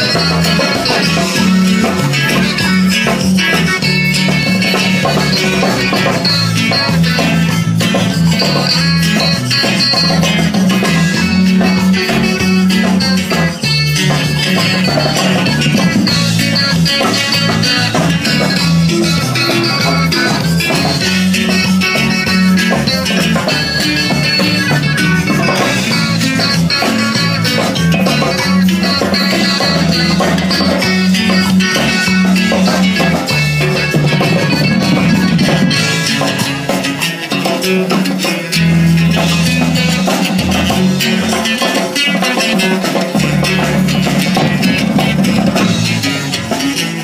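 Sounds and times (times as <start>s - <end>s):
guitar lead: 0.0s - 47.0s
live band music: 0.0s - 47.0s
steady bass line: 0.0s - 47.0s.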